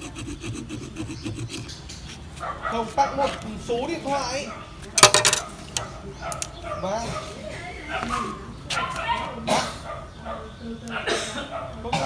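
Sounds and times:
people talking in background: 0:00.0 - 0:12.0
dog barking: 0:02.4 - 0:03.6, 0:04.4 - 0:04.8, 0:05.4 - 0:12.0.

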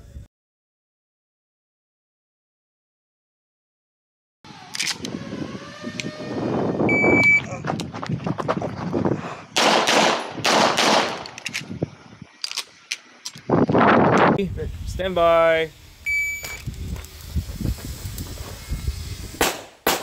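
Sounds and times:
shot timer beep: 0:06.9 - 0:07.4, 0:16.1 - 0:16.6
pistol shots echoing: 0:09.6 - 0:11.4, 0:19.4 - 0:20.0.

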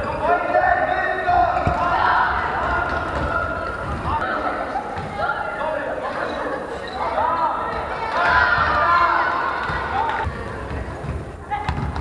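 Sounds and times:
sneakers squeaking on floor: 0:00.0 - 0:04.2, 0:06.1 - 0:08.0
players' voices: 0:00.0 - 0:12.0
basketball bouncing: 0:01.6 - 0:02.0, 0:10.6 - 0:12.0.

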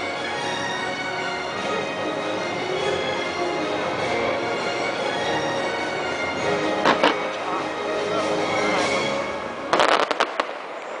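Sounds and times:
show music: 0:00.0 - 0:10.0
fireworks bangs and crackles: 0:09.7 - 0:11.0.

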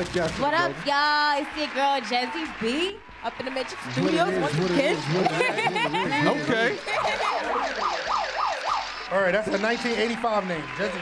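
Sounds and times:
siren wailing: 0:06.8 - 0:10.8.

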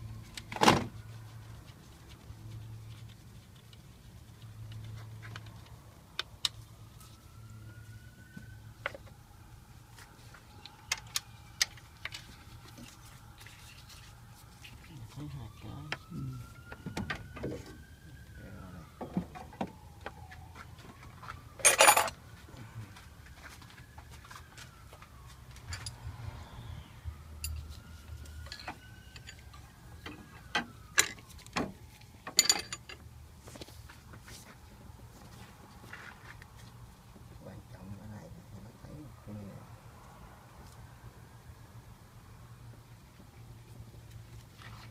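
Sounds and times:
hand tools clinking on metal: 0:21.6 - 0:22.2, 0:32.3 - 0:33.0.

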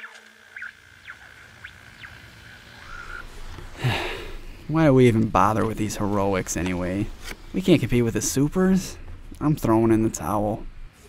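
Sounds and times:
radio static hiss: 0:00.0 - 0:11.0
steady whine: 0:00.0 - 0:11.0.

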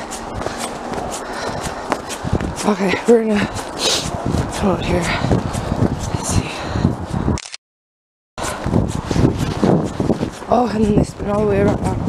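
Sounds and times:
footsteps in snow: 0:00.0 - 0:07.3, 0:08.4 - 0:12.0.

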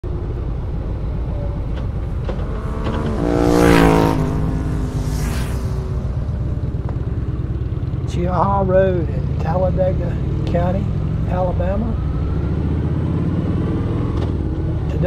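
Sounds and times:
motorcycle engine rumble: 0:00.0 - 0:15.0.

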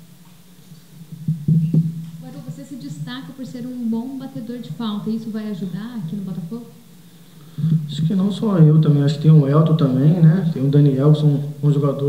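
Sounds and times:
low hum: 0:00.0 - 0:12.0
sharp knocks: 0:01.1 - 0:02.0.

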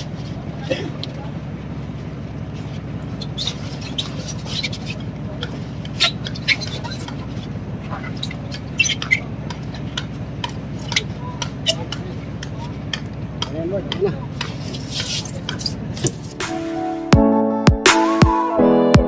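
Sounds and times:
boat engine drone: 0:00.0 - 0:17.1.

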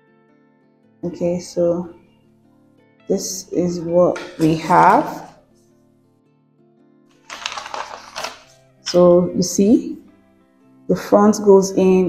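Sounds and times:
faint background music: 0:00.0 - 0:12.0
paper rustling on a table: 0:07.1 - 0:08.6.

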